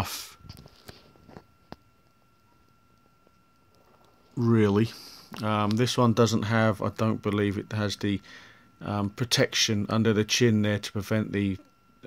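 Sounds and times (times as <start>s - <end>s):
faint high-pitched tone: 0.0s - 12.0s.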